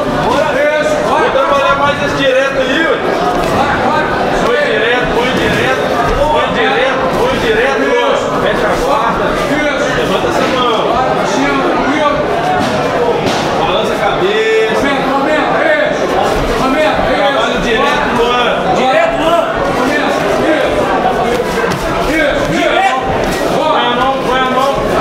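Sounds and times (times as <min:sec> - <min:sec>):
people talking and calling out: 0:00.0 - 0:25.0.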